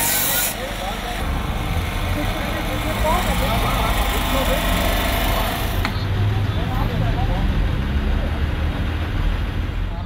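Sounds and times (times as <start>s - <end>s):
people talking: 0.0s - 1.3s, 2.0s - 8.4s
vehicle engine idling: 0.6s - 6.0s.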